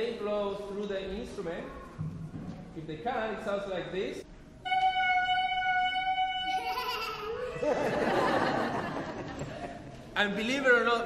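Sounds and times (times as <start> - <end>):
clarinet holding high note: 4.6 - 7.5
audience laughter: 7.3 - 10.0.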